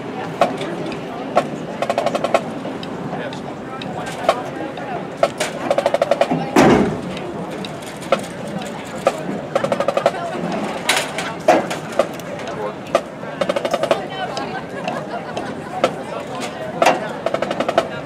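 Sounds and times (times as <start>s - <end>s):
drumline stick and rim clicks: 0.4s - 18.0s.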